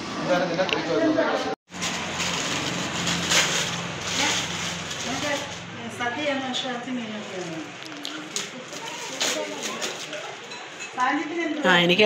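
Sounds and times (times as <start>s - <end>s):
background chatter: 0.1s - 2.4s, 3.9s - 12.0s
wrapping paper rustling and tearing: 1.7s - 5.7s, 7.0s - 10.5s.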